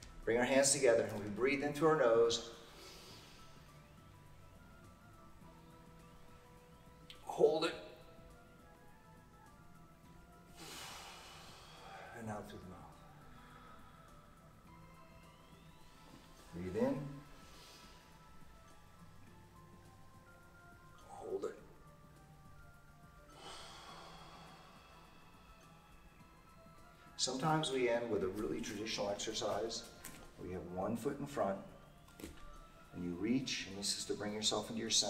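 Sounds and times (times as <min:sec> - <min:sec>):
faint background music: 0:00.0 - 0:35.0
man breathing out: 0:10.6 - 0:12.2, 0:23.3 - 0:25.7.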